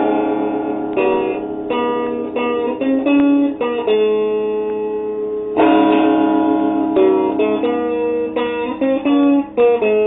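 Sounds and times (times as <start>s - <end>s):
electric guitar notes ringing: 0.0s - 10.0s.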